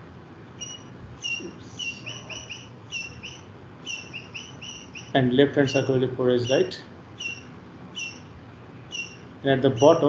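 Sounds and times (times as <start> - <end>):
faint room hiss: 0.0 - 10.0
high-pitched chirps: 0.6 - 8.3, 8.9 - 10.0.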